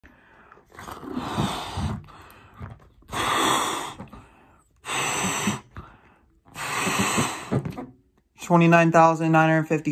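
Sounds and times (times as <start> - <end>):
person blowing up balloon: 0.5 - 7.9.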